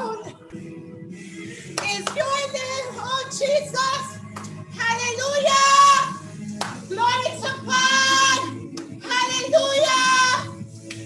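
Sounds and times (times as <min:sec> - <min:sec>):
woman singing gospel song: 0:00.0 - 0:11.0.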